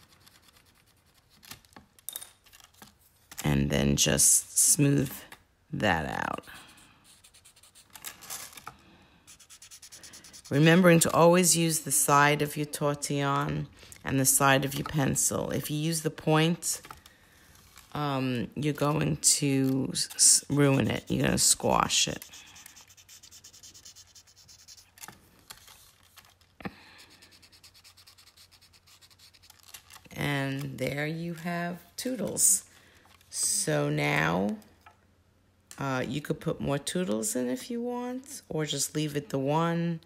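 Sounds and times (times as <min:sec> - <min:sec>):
blending stump scratching paper: 0:00.0 - 0:01.4, 0:09.3 - 0:10.8, 0:20.2 - 0:25.0, 0:27.2 - 0:29.7.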